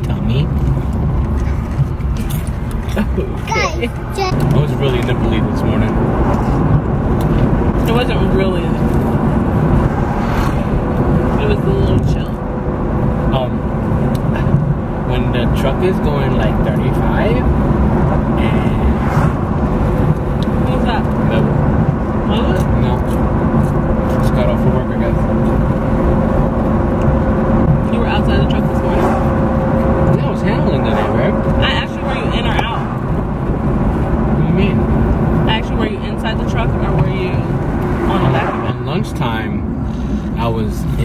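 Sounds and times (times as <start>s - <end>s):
road and engine rumble in car: 0.0s - 41.0s
man talking: 2.9s - 6.0s, 7.8s - 8.9s, 11.3s - 12.4s, 13.3s - 13.6s, 14.3s - 17.5s, 18.4s - 19.1s, 20.6s - 21.6s, 22.2s - 23.2s, 24.1s - 25.4s, 30.1s - 32.9s, 34.3s - 34.8s, 35.4s - 41.0s.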